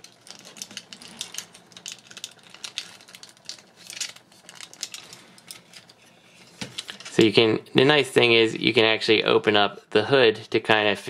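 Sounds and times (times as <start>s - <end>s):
plastic parts clicking and rattling: 0.0s - 6.0s.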